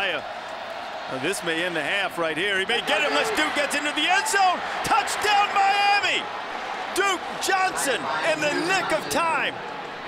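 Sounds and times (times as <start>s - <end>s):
stadium crowd noise: 0.0s - 10.0s
man shouting excitedly: 2.8s - 6.2s, 7.0s - 9.4s.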